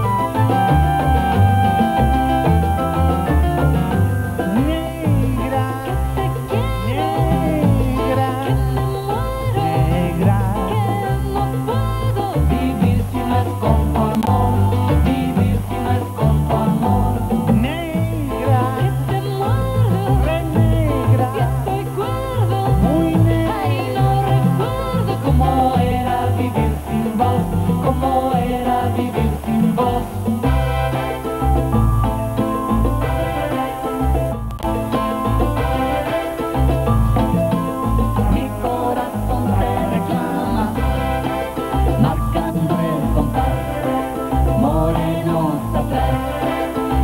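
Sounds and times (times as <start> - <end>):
drums: 0.0 - 11.8, 12.4 - 47.0
person singing: 0.0 - 31.8, 32.4 - 47.0
band song with sung vocals: 0.0 - 47.0
electric bass: 0.0 - 47.0
keyboard melody: 0.0 - 47.0.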